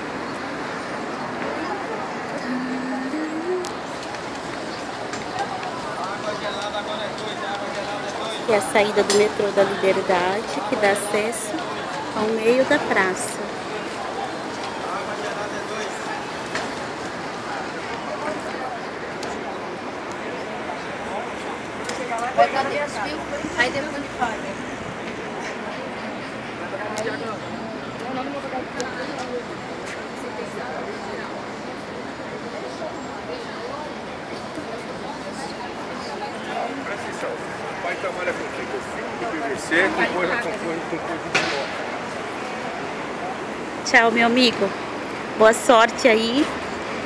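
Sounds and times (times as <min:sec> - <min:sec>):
indistinct voices: 0:00.0 - 0:46.6
street noise hum: 0:00.0 - 0:47.0
people talking: 0:01.3 - 0:46.6.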